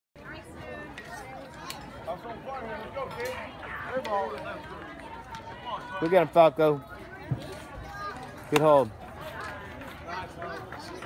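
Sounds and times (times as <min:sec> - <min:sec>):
low general chatter: 0:00.2 - 0:11.0
people talking: 0:00.2 - 0:11.0.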